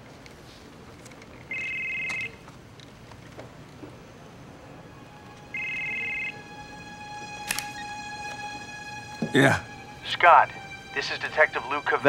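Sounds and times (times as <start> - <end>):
faint music drone: 0.0 - 12.0
phone ringing two-tone: 1.5 - 2.4, 5.4 - 6.5.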